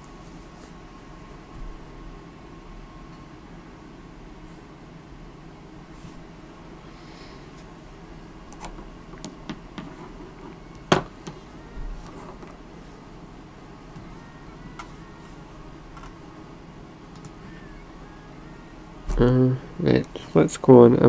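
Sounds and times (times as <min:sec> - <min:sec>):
low background hum: 0:00.0 - 0:21.0.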